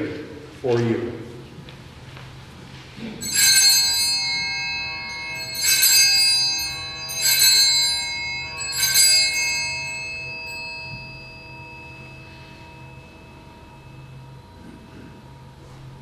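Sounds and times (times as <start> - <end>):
altar bells ringing: 3.0 - 15.7.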